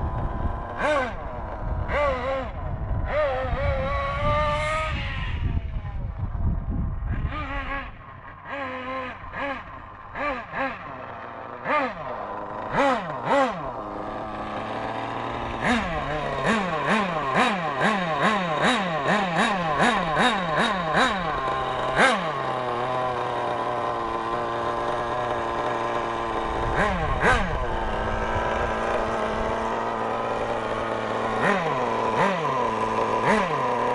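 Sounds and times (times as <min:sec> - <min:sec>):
small engine revving and idling: 0:00.0 - 0:33.9.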